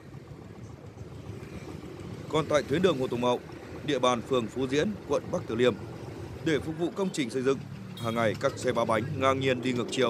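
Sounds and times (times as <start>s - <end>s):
motorbike engines: 0.0s - 10.0s
street traffic rumble: 0.0s - 10.0s.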